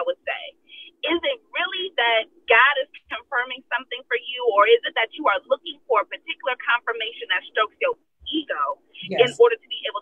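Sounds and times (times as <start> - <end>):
person talking over telephone: 3.3 - 10.0.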